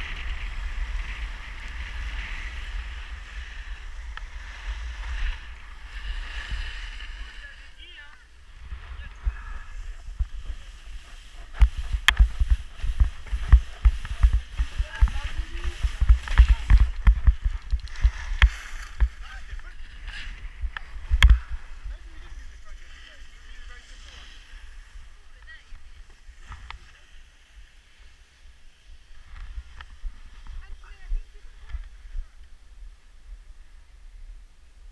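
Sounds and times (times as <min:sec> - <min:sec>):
wind buffeting microphone: 0:00.0 - 0:22.8
skis thudding over bumps: 0:00.0 - 0:27.5
skis scraping over snow: 0:00.0 - 0:32.2.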